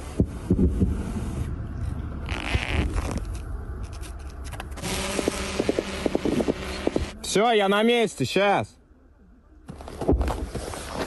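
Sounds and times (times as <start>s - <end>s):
low rumble: 0.0s - 7.2s
drone propellers buzzing: 4.7s - 7.2s.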